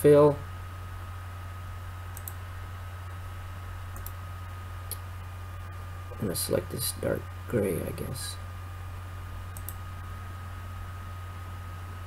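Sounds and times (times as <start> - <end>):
low electrical hum: 0.0 - 12.0
thin steady whine: 0.0 - 12.0
computer mouse clicks: 2.1 - 2.4, 3.9 - 4.2, 9.5 - 9.8.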